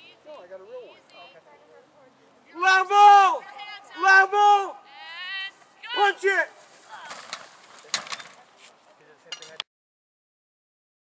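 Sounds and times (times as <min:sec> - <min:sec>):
rustling: 0:05.3 - 0:09.3.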